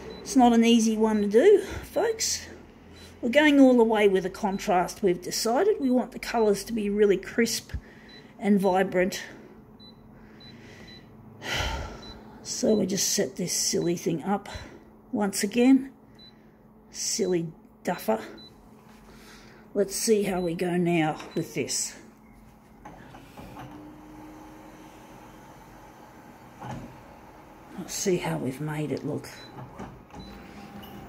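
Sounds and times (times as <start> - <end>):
photocopier running: 0.0 - 0.3, 22.6 - 31.0.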